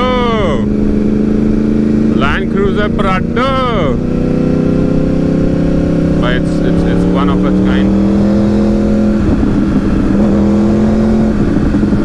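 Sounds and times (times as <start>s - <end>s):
motorcycle engine hum: 0.0s - 12.0s
road noise: 0.0s - 12.0s
wind noise: 0.0s - 12.0s.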